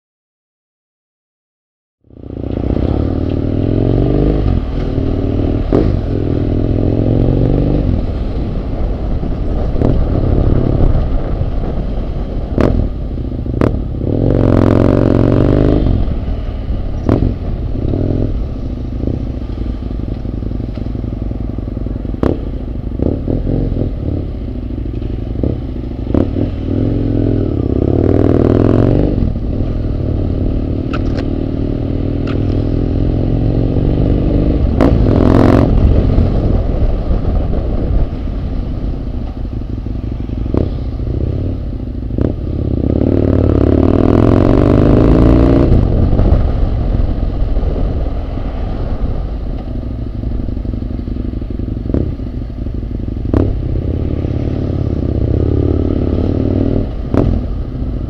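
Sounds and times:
motorcycle engine accelerating: 2.0 - 58.0.

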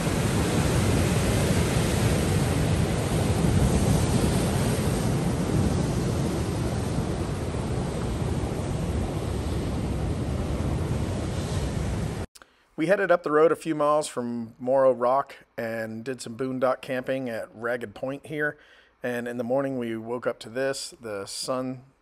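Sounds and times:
surf breaking on rocky shore: 0.0 - 12.3
wind rumbling on microphone: 0.0 - 12.3.

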